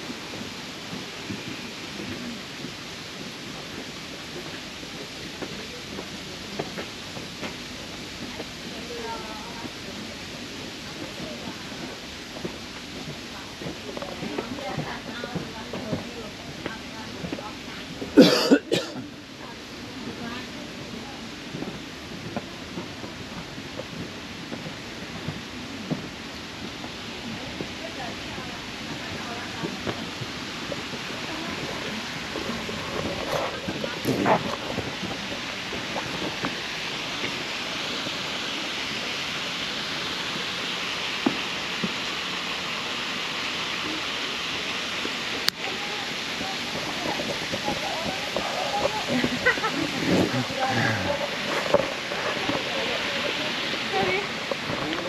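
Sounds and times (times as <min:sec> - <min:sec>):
faint background voices: 0:00.0 - 0:40.4, 0:43.6 - 0:55.0
outdoor background hiss: 0:00.0 - 0:55.0
person coughing: 0:18.2 - 0:19.0.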